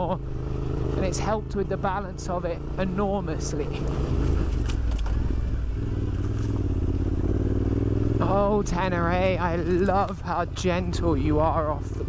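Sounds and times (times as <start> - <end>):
motorcycle engine pulling at low revs: 0.0 - 12.0.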